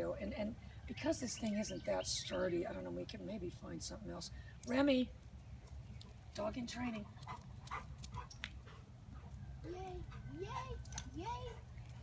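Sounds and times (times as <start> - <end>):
dog panting: 7.2 - 9.4, 10.0 - 10.8, 11.4 - 12.0.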